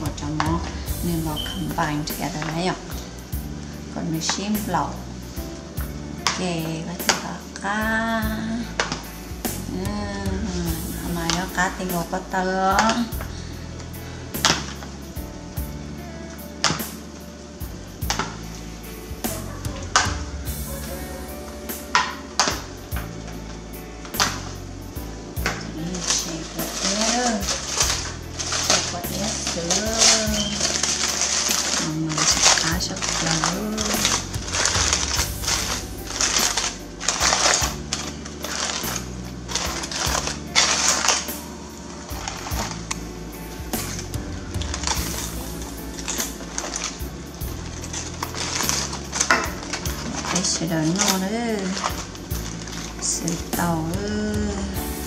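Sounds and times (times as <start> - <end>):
music with steady beat: 0.0 - 55.0.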